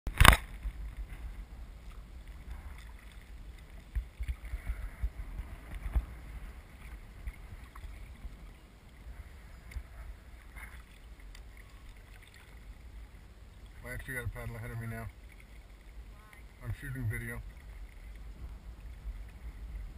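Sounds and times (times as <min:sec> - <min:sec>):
paddle and water sounds: 0:00.1 - 0:19.9
wind buffeting microphone: 0:00.2 - 0:11.0, 0:16.0 - 0:19.9.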